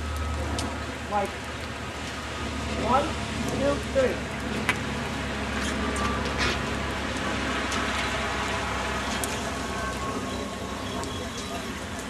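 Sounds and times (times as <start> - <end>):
traffic engine hum: 0.0 - 12.0
tyres hissing on wet pavement: 0.0 - 12.0.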